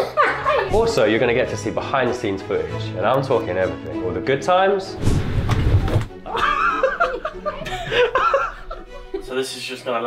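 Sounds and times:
background music: 0.0 - 10.0
people laughing: 6.2 - 9.5.

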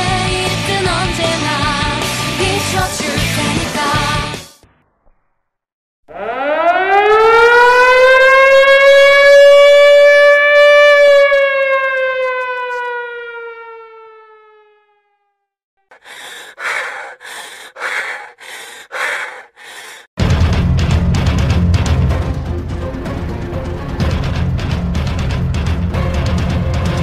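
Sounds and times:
air-raid siren wail: 6.1 - 15.5.

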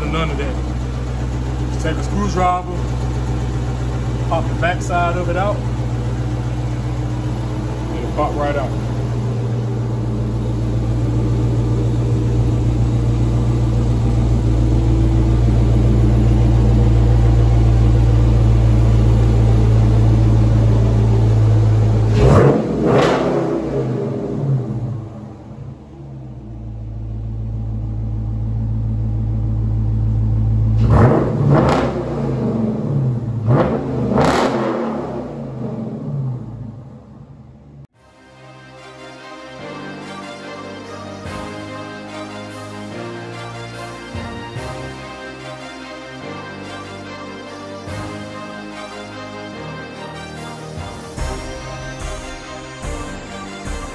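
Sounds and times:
car engine idling and revving: 0.0 - 38.0, 41.3 - 53.9.

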